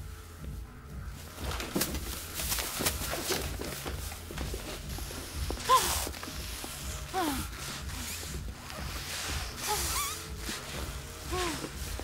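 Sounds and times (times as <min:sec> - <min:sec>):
plastic bag rustling: 0:01.2 - 0:12.0
woman's muffled whimper: 0:05.6 - 0:06.2, 0:07.0 - 0:08.2, 0:11.2 - 0:11.9.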